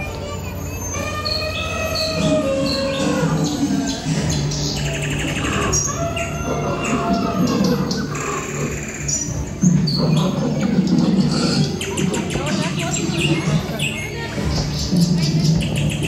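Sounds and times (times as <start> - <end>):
gliding animal calls: 0.0 - 16.0
steady low hum: 0.0 - 16.0
music: 0.4 - 16.0.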